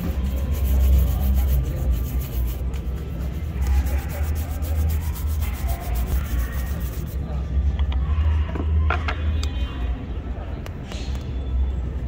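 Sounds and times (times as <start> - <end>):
brush scrubbing leather shoe: 0.0 - 7.2.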